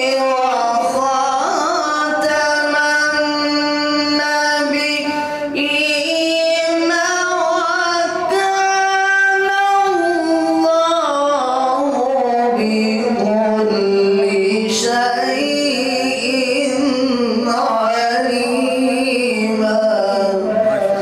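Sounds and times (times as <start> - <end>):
man chanting melodically into microphone: 0.0 - 21.0.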